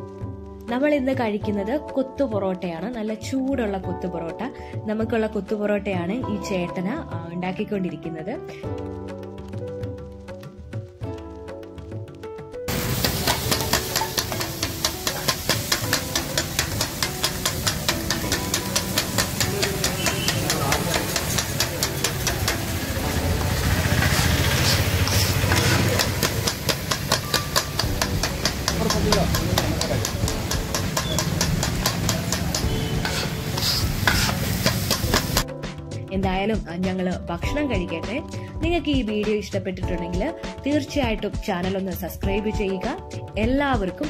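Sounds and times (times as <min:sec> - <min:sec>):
food sizzling: 0:12.7 - 0:35.4
metal blades chopping on griddle: 0:12.7 - 0:35.4.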